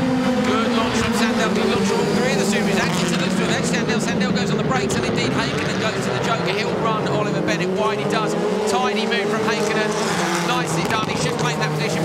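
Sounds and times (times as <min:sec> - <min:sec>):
race car engines racing: 0:00.0 - 0:12.0.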